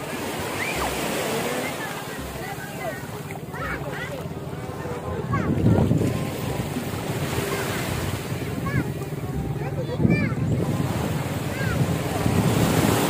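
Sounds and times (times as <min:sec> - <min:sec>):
small waves on sandy beach: 0:00.0 - 0:13.0
wind buffeting microphone: 0:04.3 - 0:13.0.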